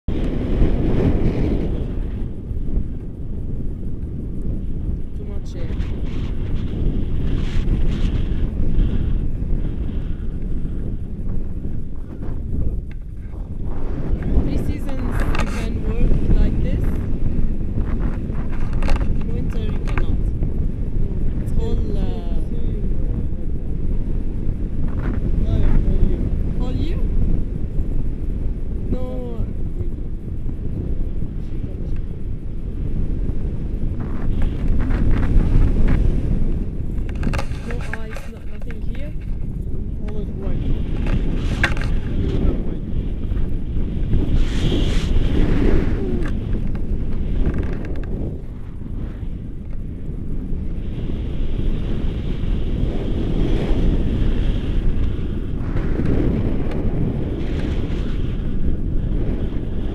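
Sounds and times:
air buffeting microphone: 0:00.0 - 0:59.9.

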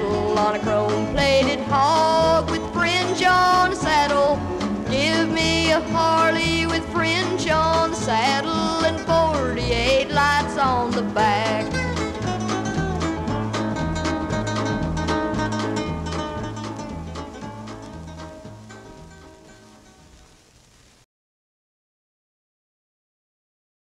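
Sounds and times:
country band playing: 0:00.0 - 0:20.4
guitar lead bending notes: 0:00.0 - 0:20.4
steady bass beat: 0:11.7 - 0:19.8.

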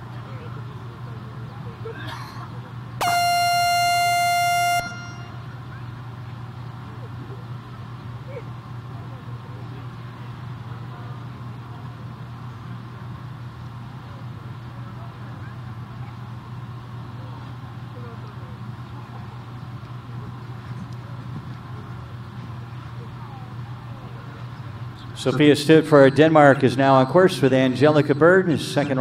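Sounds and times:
low hum of arena ambience: 0:00.0 - 0:29.0
electronic buzzer tone: 0:03.0 - 0:05.5.

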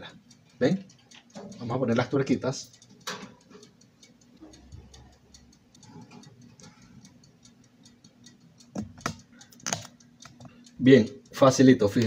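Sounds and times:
clockwork ticking: 0:00.0 - 0:12.0.

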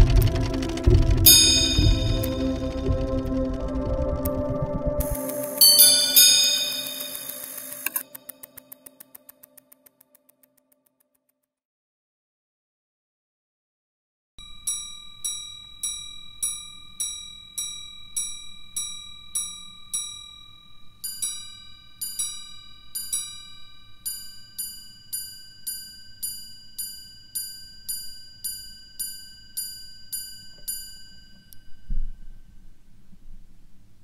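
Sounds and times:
watch chiming on gongs: 0:00.0 - 0:04.2, 0:05.0 - 0:08.2.

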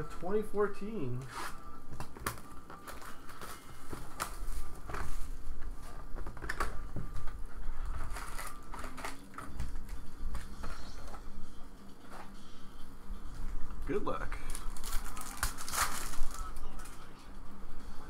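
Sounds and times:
foil wrappers crinkling: 0:01.2 - 0:11.2, 0:14.2 - 0:17.1.

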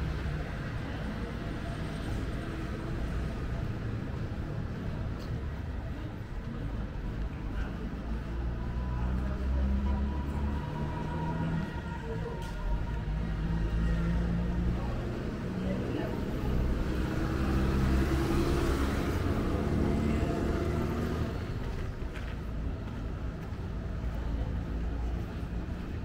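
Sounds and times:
traffic engines rumbling: 0:00.0 - 0:26.0
vehicle passing: 0:13.6 - 0:21.7.

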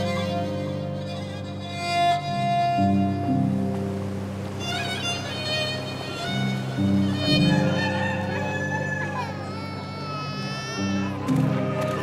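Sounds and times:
background music with low notes: 0:00.0 - 0:12.0
rooster crowing: 0:07.7 - 0:09.4.

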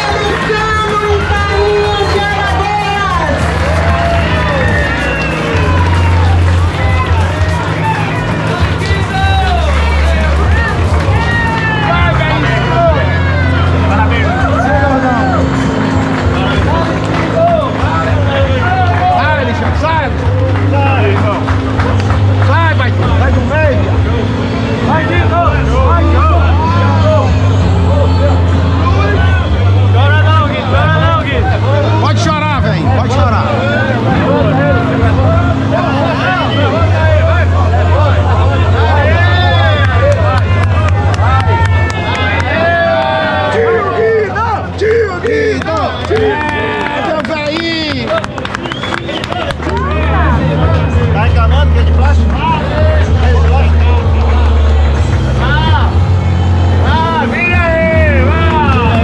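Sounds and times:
crowd talking and calling out: 0:00.0 - 0:59.0
music with bass line: 0:00.0 - 0:59.0.

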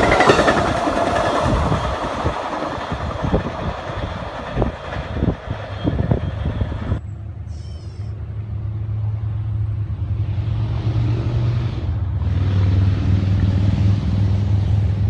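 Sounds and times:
diesel locomotive engine hum: 0:00.0 - 0:15.0.

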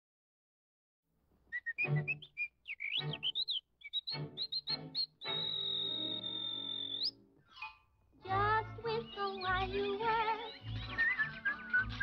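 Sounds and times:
whistled bird chirps: 0:01.5 - 0:07.8, 0:09.0 - 0:12.0
light orchestral music: 0:04.1 - 0:12.0
long high whistle: 0:05.2 - 0:07.1.

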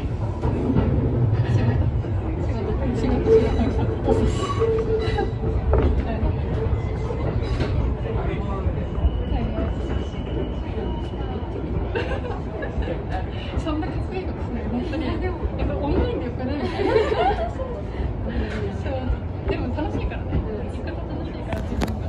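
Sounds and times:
electric train rumbling: 0:00.0 - 0:22.0.

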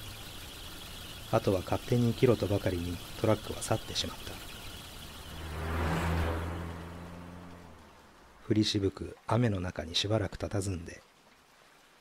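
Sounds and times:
truck engine driving off: 0:00.0 - 0:08.3.

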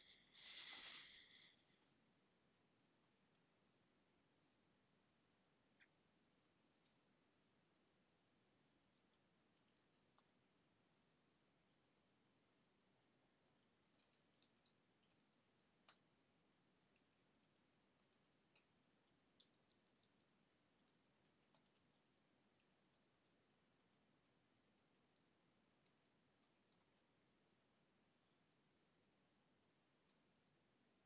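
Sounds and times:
small clicks: 0:08.0 - 0:11.8, 0:13.6 - 0:16.2, 0:16.9 - 0:27.1.

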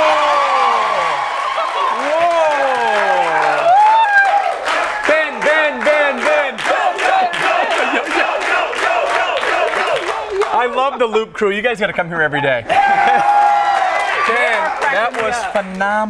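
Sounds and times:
people cheering and whooping: 0:00.0 - 0:10.7, 0:12.6 - 0:15.6
people clapping: 0:00.0 - 0:11.0, 0:12.7 - 0:16.0.

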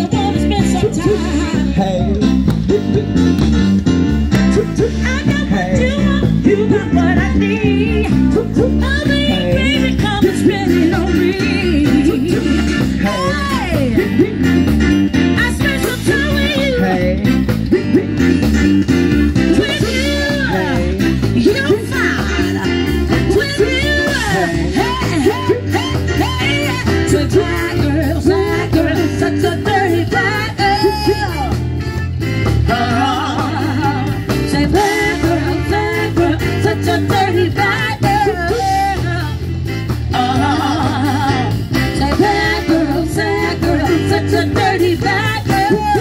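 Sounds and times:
lead vocal singing: 0:00.0 - 0:03.5, 0:04.4 - 0:18.5, 0:19.4 - 0:31.7, 0:32.4 - 0:46.0
bass guitar: 0:00.0 - 0:46.0
drum kit: 0:00.0 - 0:46.0
electric guitar: 0:00.0 - 0:46.0
keyboard: 0:00.0 - 0:46.0
live band music: 0:00.0 - 0:46.0.

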